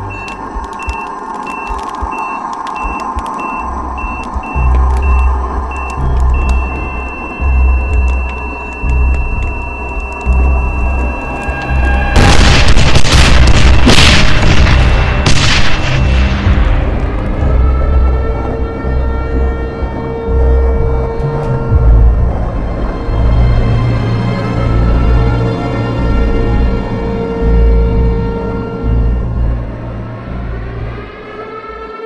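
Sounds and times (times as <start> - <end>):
bomb timer beeping: 0.0 - 12.1
suspense music with pulsing bass: 0.0 - 32.0
loud explosion: 11.9 - 17.0.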